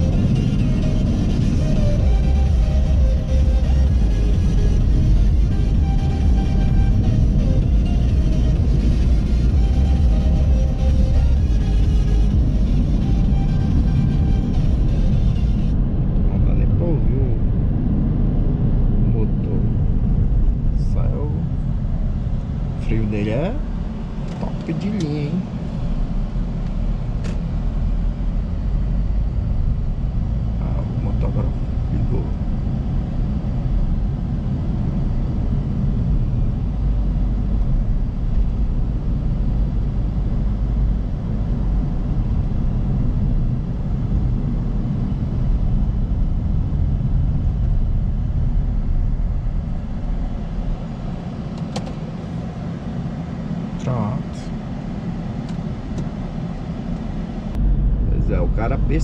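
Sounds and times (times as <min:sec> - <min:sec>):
road and tyre rumble: 0:00.0 - 0:59.0.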